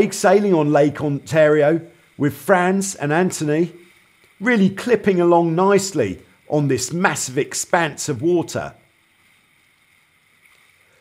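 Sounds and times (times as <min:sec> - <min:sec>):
faint rush of water and wind: 0:00.0 - 0:11.0.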